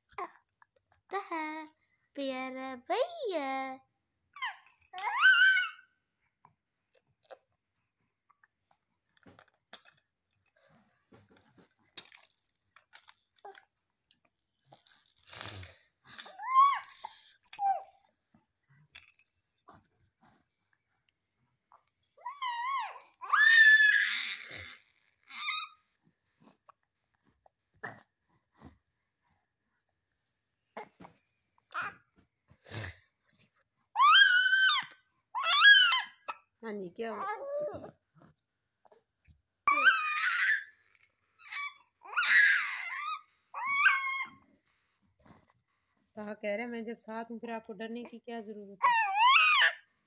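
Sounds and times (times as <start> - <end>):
baby squealing: 4.4 - 5.8, 16.3 - 18.0, 34.0 - 34.8, 39.7 - 40.7, 41.4 - 44.4, 48.8 - 49.8.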